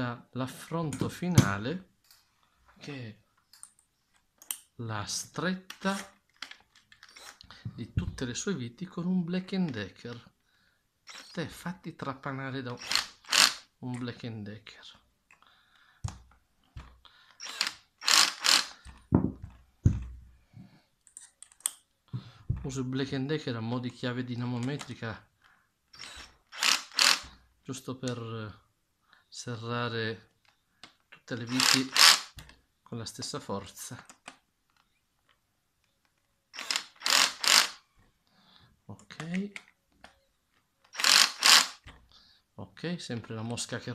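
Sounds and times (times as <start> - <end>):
drill handling clicks and knocks: 5.7 - 8.3, 16.0 - 20.2, 25.9 - 27.4, 30.4 - 32.6, 36.0 - 37.8, 39.0 - 42.1
cordless drill driving a screw: 7.0 - 7.4, 11.1 - 11.4, 12.8 - 13.6, 17.3 - 18.9, 25.9 - 27.4, 31.5 - 32.4, 36.5 - 37.8, 40.9 - 41.9
drill clutch clicking: 12.8 - 13.6, 17.4 - 19.0, 26.0 - 27.3, 31.5 - 32.3, 36.6 - 37.8, 40.9 - 41.9.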